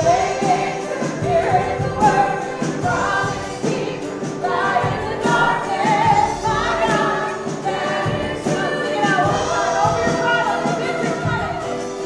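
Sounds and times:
women singing into microphones: 0.0 - 12.0.

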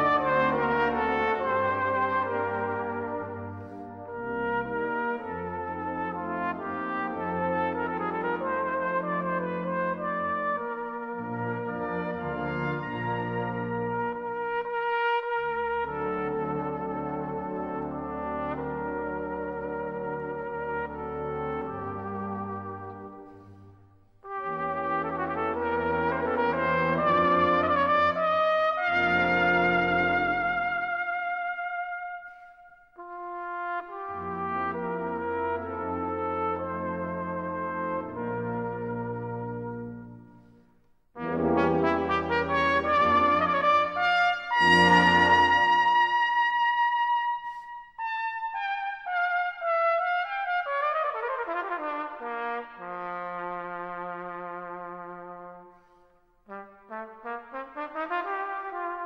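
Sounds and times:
brass band accompaniment: 0.0 - 40.6, 41.2 - 59.0.

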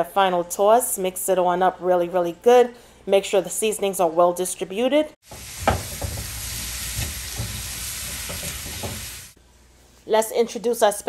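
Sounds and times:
vegetables sizzling in a wok: 5.2 - 9.4
spatula scraping a pan: 5.3 - 9.3.

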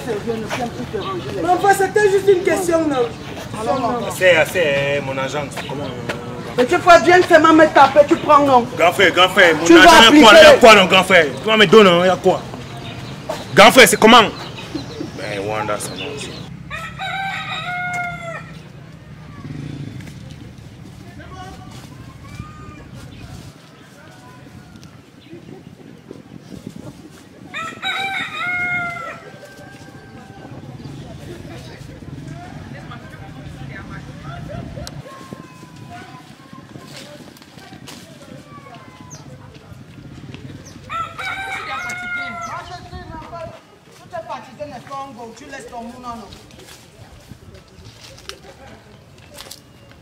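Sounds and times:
rooster crowing: 16.7 - 18.6, 27.5 - 30.5, 40.9 - 42.7.

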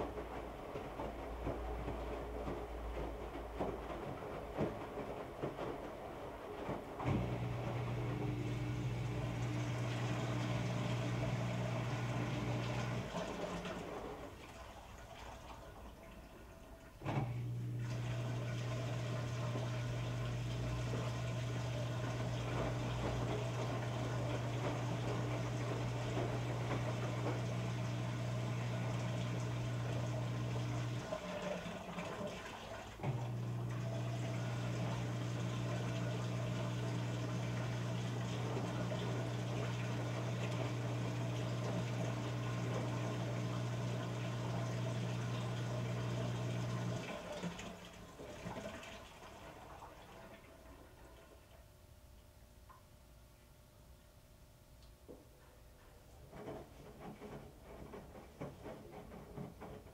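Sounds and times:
washing machine humming: 0.0 - 59.9.

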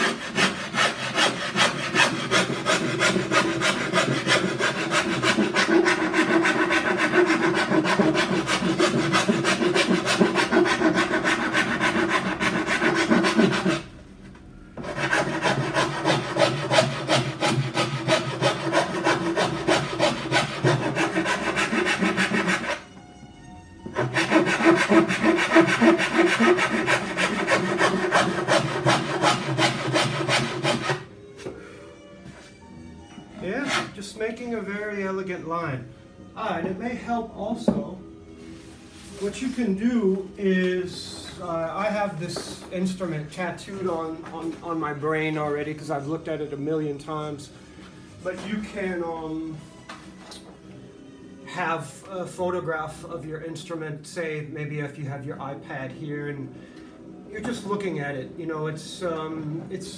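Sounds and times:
hand file rasping on wood: 0.0 - 13.9, 14.8 - 22.8, 24.0 - 31.0, 33.6 - 34.0.

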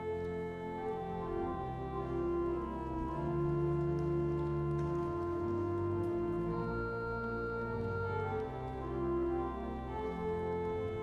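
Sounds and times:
organ sustained chords: 0.0 - 11.0.

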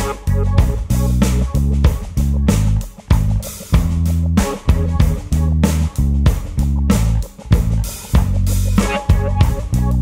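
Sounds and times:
chopped guitar and bass chords: 0.0 - 10.0
drums: 0.0 - 10.0.

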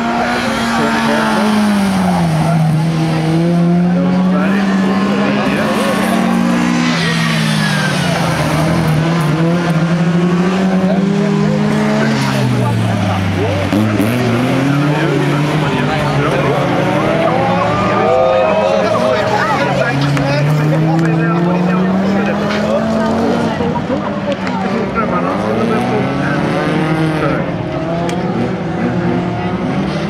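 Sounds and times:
race car engines running hard: 0.0 - 30.0.

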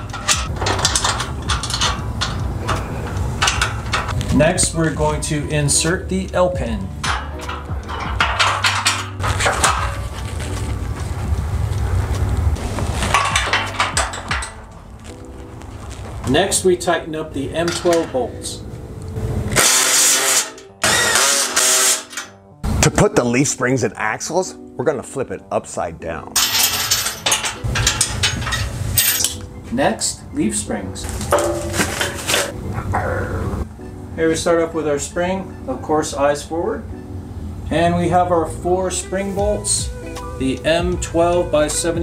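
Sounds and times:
metal clanking and scraping: 0.0 - 5.2, 5.8 - 11.2, 12.6 - 16.5, 17.4 - 18.6, 19.4 - 22.4, 26.4 - 29.5, 31.0 - 32.6
background music with low bass: 0.0 - 42.0
low rumble: 6.9 - 16.5
metal pin clinking in hinge: 26.4 - 29.5.

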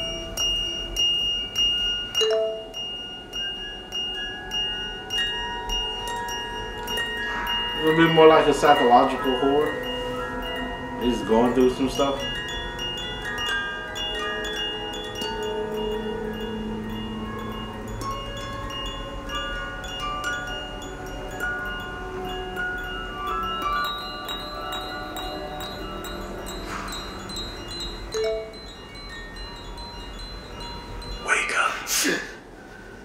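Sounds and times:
chime-like ringing notes: 0.0 - 31.8.

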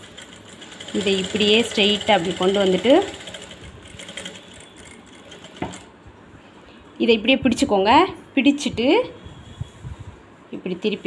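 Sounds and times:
electric sewing machine running: 0.0 - 5.9.

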